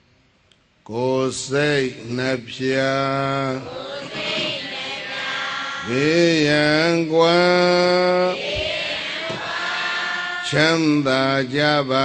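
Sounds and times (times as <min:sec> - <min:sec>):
man chanting: 0:00.9 - 0:03.7, 0:05.8 - 0:08.4, 0:10.4 - 0:12.0.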